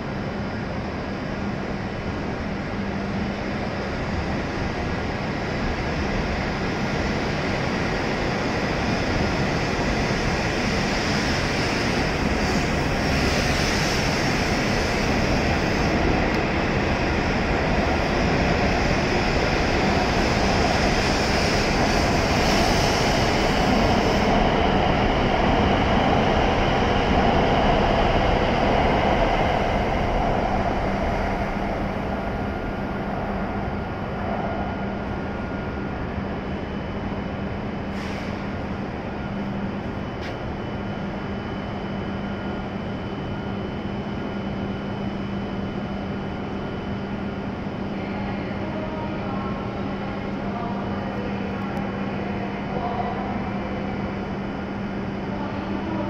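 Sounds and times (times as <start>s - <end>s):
train rolling past platform: 0.0s - 56.0s.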